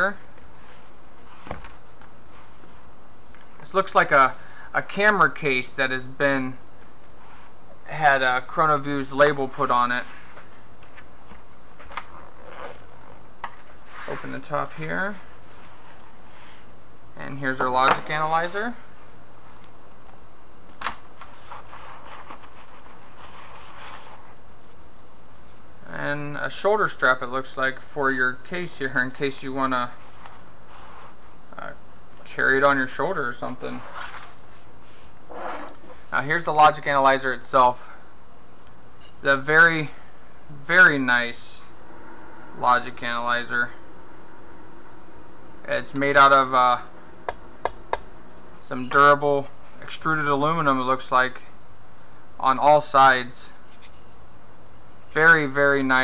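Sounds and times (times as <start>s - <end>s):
background hiss: 0.0s - 56.0s
soft unpitched rush: 40.7s - 50.4s.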